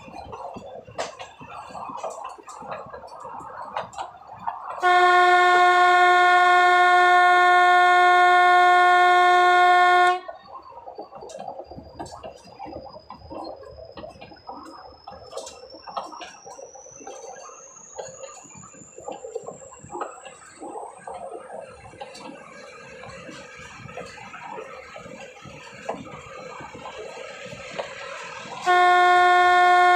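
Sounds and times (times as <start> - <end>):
train wheels clicking on track: 0.0 - 29.9
loud train horn: 4.8 - 10.4, 28.6 - 29.9.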